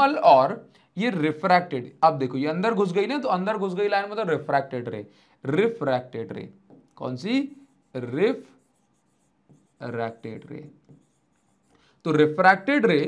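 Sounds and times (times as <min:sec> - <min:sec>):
man speaking: 0:00.0 - 0:08.6, 0:09.8 - 0:10.8, 0:12.0 - 0:13.0.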